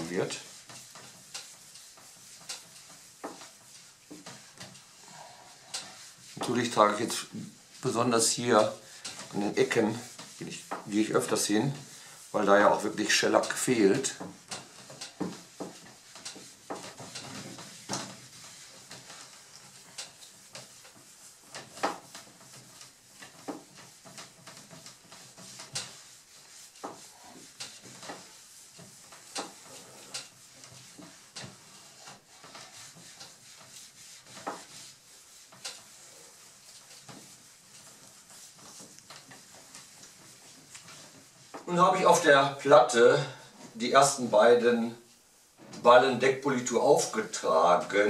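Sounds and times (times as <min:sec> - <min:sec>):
polishing pad rubbing on wood: 0:00.0 - 0:48.0.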